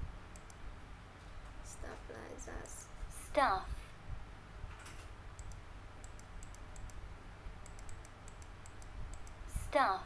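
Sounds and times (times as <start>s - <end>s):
person speaking: 1.6s - 3.8s
computer keyboard typing: 5.4s - 7.0s, 7.6s - 9.4s.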